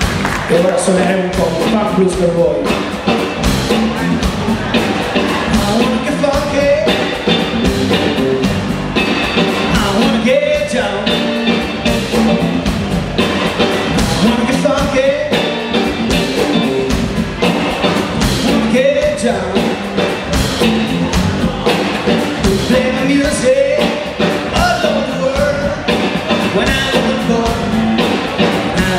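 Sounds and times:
blues band playing: 0:00.0 - 0:28.9
lead guitar bending notes: 0:00.0 - 0:28.9.

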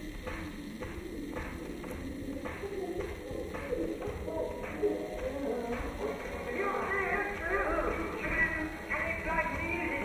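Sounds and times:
dance music backing: 0:00.0 - 0:10.0.

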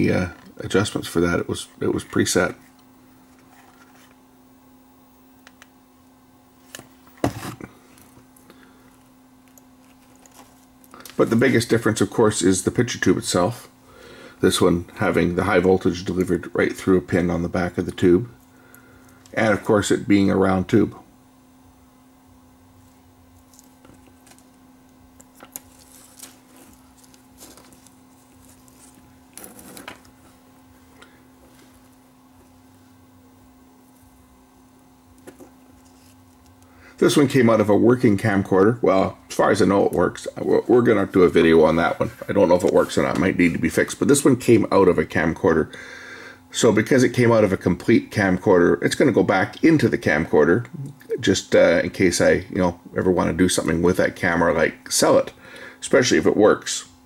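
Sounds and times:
faint low hum: 0:00.0 - 0:57.0
circuit board rustling: 0:06.5 - 0:11.8, 0:22.7 - 0:34.3, 0:34.9 - 0:37.9.

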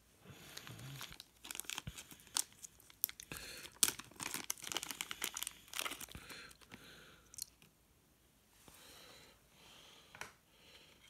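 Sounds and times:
plastic bag crinkling: 0:00.5 - 0:07.6.

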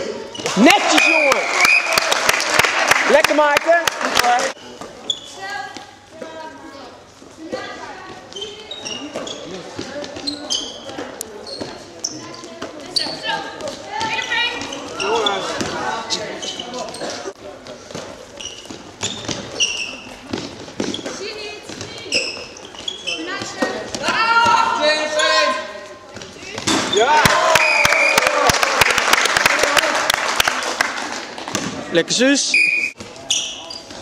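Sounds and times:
shoes squeaking on floor: 0:00.0 - 0:01.4, 0:04.5 - 0:27.1, 0:32.4 - 0:34.0
ball passed and caught: 0:26.2 - 0:27.4, 0:31.4 - 0:31.9
players shouting: 0:26.9 - 0:28.8.

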